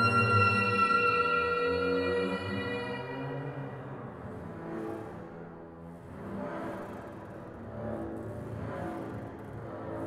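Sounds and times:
soprano saxophone: 0.0 - 4.2
double bass: 0.0 - 10.0.

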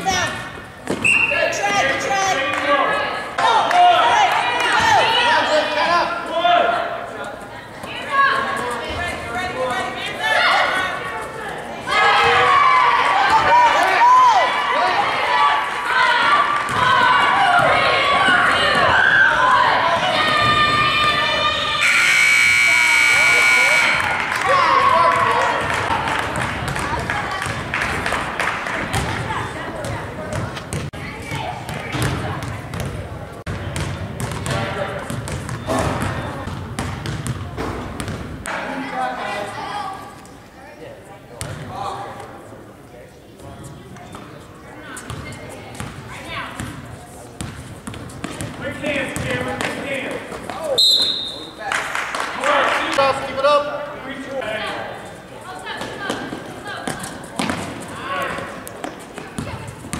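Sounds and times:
crowd voices: 0.0 - 59.9
scoreboard buzzer: 21.8 - 24.2.

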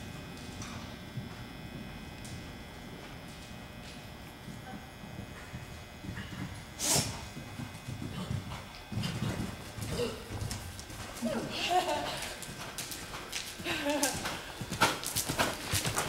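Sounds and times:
horse hoofbeats cantering: 0.0 - 16.0.

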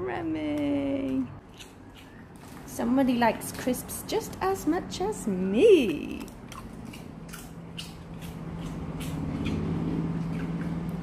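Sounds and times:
dog crunching crisp: 1.4 - 3.7, 5.8 - 11.0.

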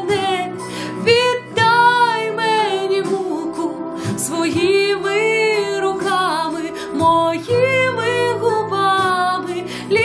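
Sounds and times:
instrumental backing track: 0.0 - 10.0
woman singing pop ballad: 0.0 - 10.0.

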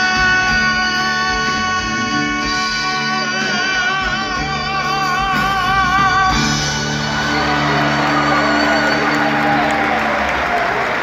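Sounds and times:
live band closing chord: 0.0 - 11.0
crowd applauding and cheering: 6.3 - 11.0.

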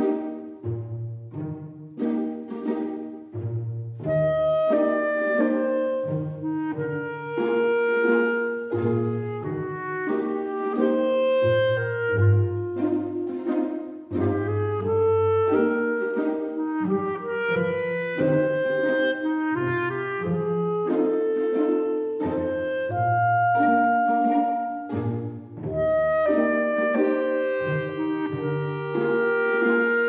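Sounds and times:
instrumental background music: 0.0 - 30.0.

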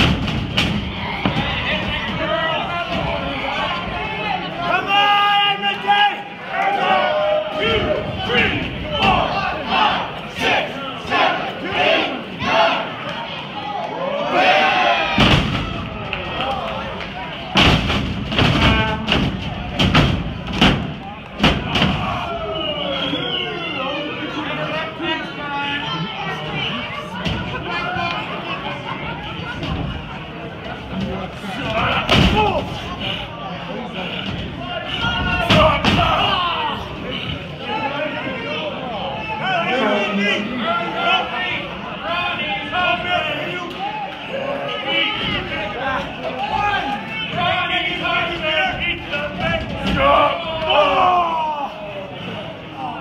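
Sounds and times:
spectators shouting: 0.0 - 53.0.

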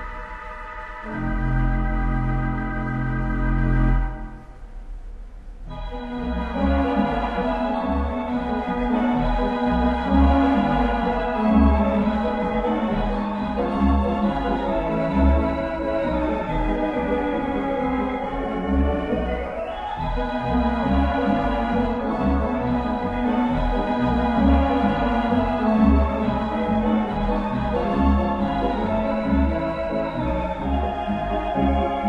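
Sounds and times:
theatre pipe organ chords: 0.0 - 4.8, 5.6 - 32.0.

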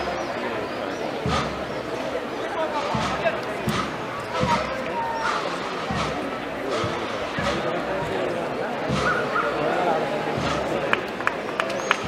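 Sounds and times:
crowd talking: 0.0 - 12.0
deep drum beats: 1.2 - 11.2.

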